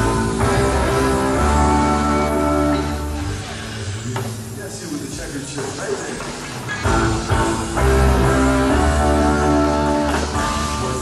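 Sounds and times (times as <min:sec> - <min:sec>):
live rock band playing: 0:00.0 - 0:03.9, 0:06.8 - 0:11.0.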